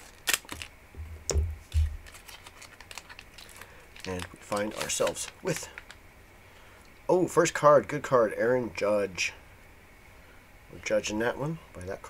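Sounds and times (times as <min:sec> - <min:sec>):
scissors snipping plastic wrapper: 0:00.0 - 0:00.7, 0:02.0 - 0:05.9
plastic crinkling: 0:00.0 - 0:06.0
low handling thumps: 0:00.9 - 0:02.1.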